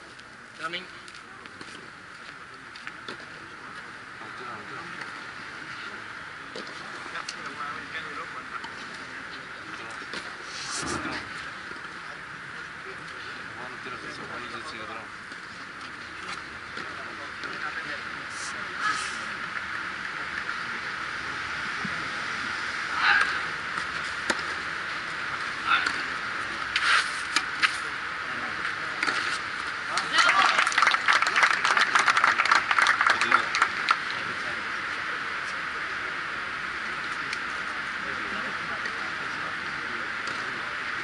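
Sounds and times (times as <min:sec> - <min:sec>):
steady background hiss: 0:00.0 - 0:41.0
racket hitting ball: 0:23.2 - 0:24.6
spectators clapping: 0:29.9 - 0:34.2.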